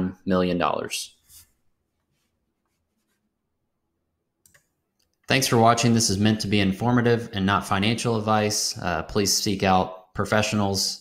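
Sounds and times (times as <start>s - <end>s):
marker scratching on board: 2.1s - 3.3s.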